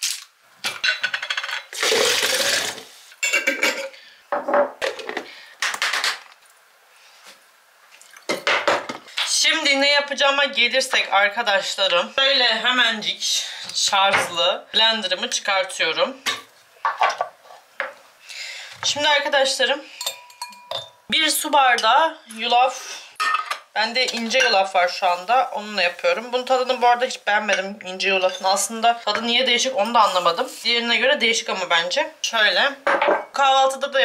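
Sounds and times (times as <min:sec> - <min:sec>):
glass jar clinking: 0:20.0 - 0:21.0.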